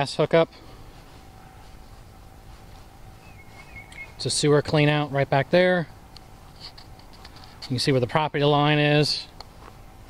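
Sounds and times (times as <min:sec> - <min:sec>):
faint wavering bird call: 0:03.2 - 0:04.2.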